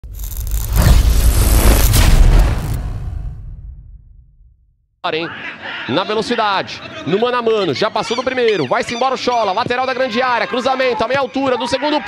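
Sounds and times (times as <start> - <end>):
sharp hits: 0.0 - 4.9
deep boom: 0.0 - 5.0.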